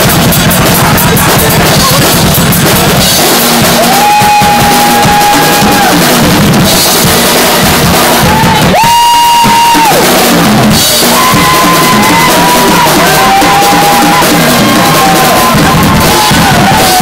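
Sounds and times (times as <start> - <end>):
drum kit: 0.0 - 17.0
live rock band playing: 0.0 - 17.0.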